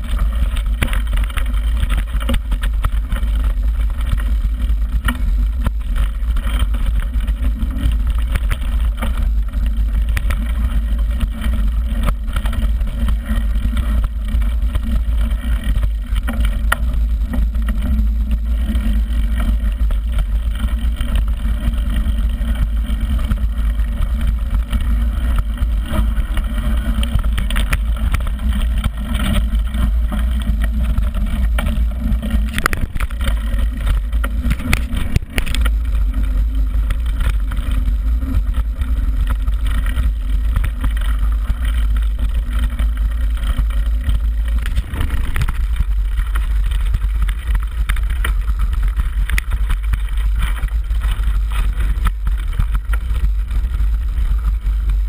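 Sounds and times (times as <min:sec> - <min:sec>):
bike knocks and rattles: 0:00.0 - 0:55.0
bike tyres on gravel: 0:00.0 - 0:55.0
wind rumble on microphone: 0:00.0 - 0:55.0.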